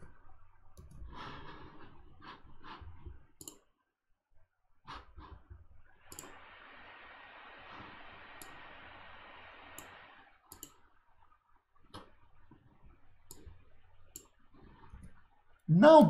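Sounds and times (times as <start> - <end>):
soft breathing: 0.9 - 3.3
faint hiss: 6.0 - 10.4.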